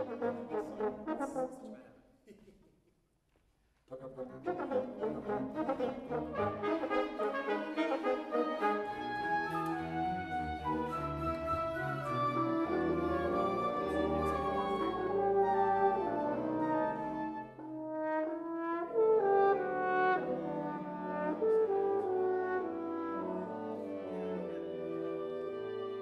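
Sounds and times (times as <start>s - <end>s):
wind ensemble playing chords: 0.0s - 1.8s, 4.0s - 26.0s.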